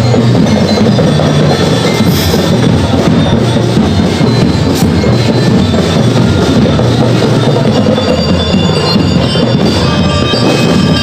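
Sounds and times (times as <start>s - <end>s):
bell-lyre tones: 0.0s - 11.0s
marching drums: 0.0s - 11.0s.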